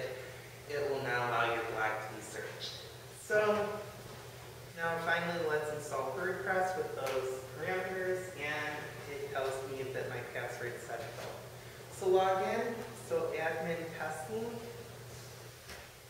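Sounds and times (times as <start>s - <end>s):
man talking: 0.0s - 3.9s, 4.7s - 14.8s.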